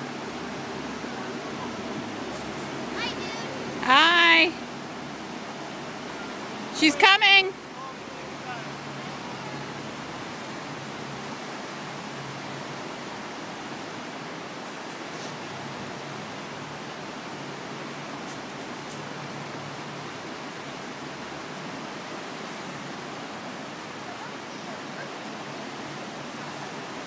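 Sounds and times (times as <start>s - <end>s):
rushing whitewater rapids: 0.0s - 27.0s.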